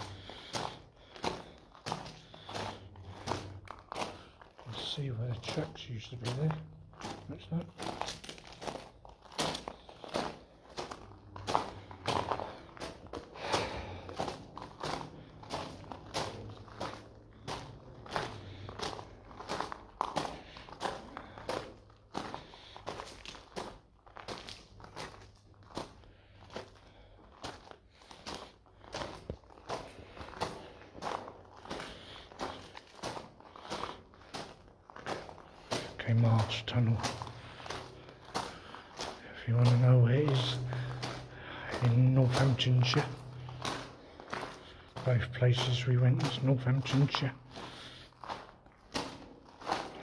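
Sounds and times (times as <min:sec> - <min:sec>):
footsteps on gravel: 0:00.0 - 0:50.0.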